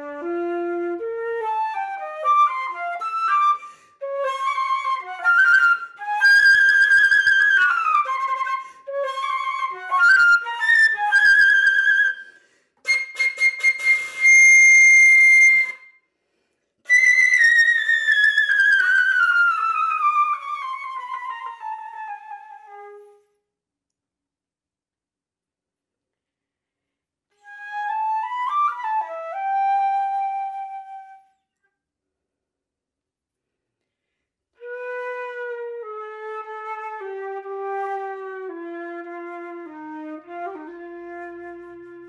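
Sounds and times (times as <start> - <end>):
solo flute playing: 0.0 - 16.0, 16.9 - 23.4, 27.4 - 31.5, 34.6 - 42.0.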